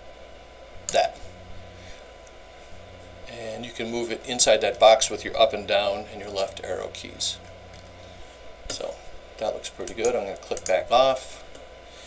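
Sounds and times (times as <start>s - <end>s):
steady low hum: 0.0s - 12.0s
person speaking: 0.8s - 1.9s, 2.7s - 11.5s.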